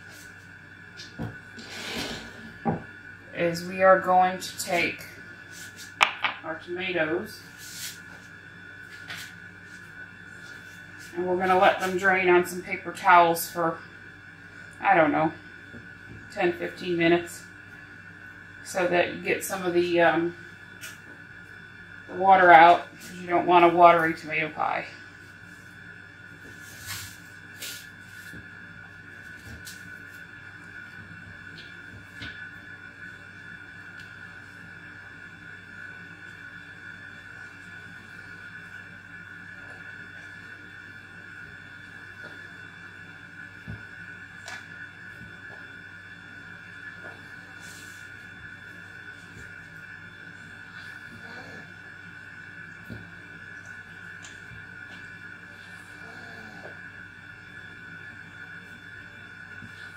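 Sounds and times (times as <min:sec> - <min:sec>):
steady hum of held pitches: 0:00.0 - 0:59.9.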